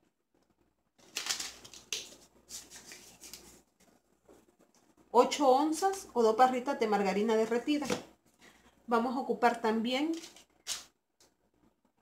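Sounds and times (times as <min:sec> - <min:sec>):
plastic packaging rustling: 0:01.0 - 0:03.7, 0:10.1 - 0:10.9.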